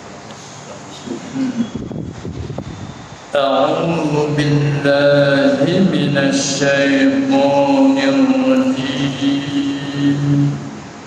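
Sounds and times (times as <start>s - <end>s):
man chanting: 3.3s - 10.9s.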